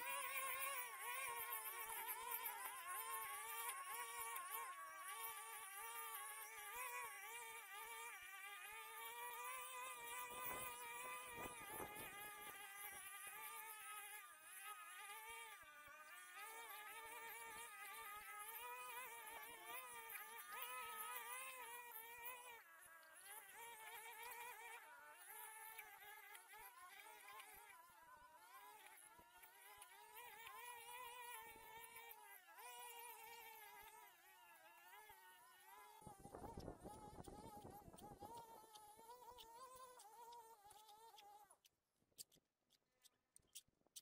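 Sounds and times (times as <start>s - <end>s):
distant string trimmers buzzing: 0.0s - 15.5s
faint brush cutters whining: 0.0s - 29.0s.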